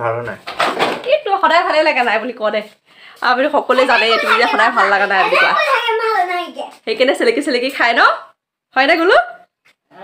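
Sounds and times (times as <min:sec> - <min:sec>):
woman speaking: 0:01.0 - 0:05.7, 0:06.8 - 0:09.5.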